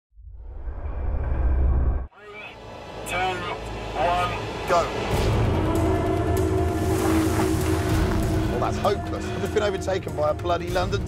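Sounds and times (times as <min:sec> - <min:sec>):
road noise: 0:02.1 - 0:08.8.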